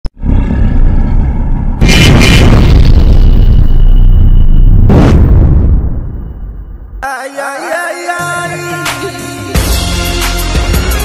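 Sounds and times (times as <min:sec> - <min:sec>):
deep rumbling: 0:00.1 - 0:07.0
sudden blast: 0:00.2 - 0:07.0.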